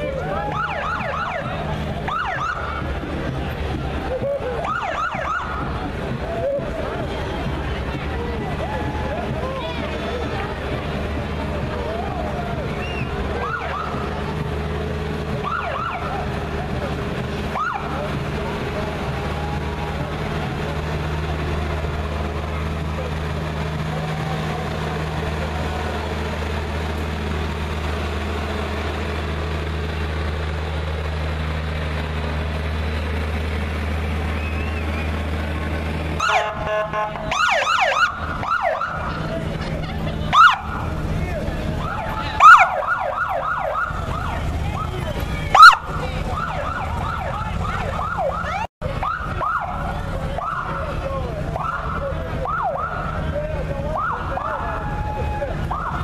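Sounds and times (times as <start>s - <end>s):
truck engine droning: 0.0s - 56.0s
police siren chirps: 0.2s - 2.9s, 4.1s - 5.8s, 12.9s - 14.1s, 15.4s - 16.3s, 36.2s - 39.2s, 40.3s - 40.9s, 41.8s - 53.3s, 53.9s - 56.0s.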